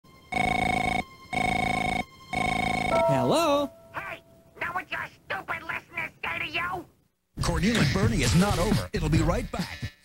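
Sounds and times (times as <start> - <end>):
cartoon telephone ringing: 0.3 - 4.4.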